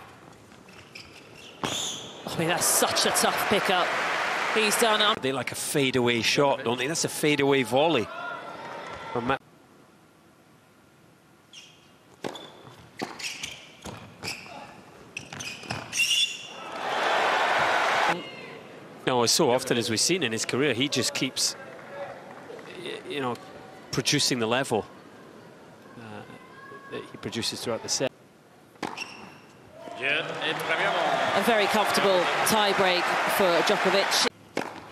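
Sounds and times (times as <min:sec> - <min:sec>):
shoes squeaking on court: 0:00.2 - 0:02.3, 0:11.5 - 0:16.5, 0:28.7 - 0:29.6
crowd applauding and cheering: 0:02.6 - 0:05.2, 0:16.6 - 0:18.2, 0:30.0 - 0:34.3
tennis ball struck by rackets: 0:34.5 - 0:34.9.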